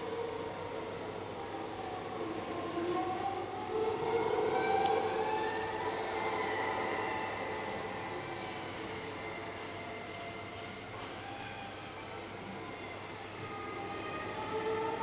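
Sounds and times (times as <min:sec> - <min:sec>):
string quartet long bowed notes: 0:00.0 - 0:15.0.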